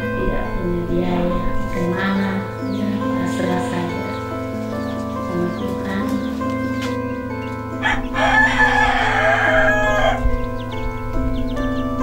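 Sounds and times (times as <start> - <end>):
background music: 0.0 - 12.0
rooster crowing: 7.8 - 10.7.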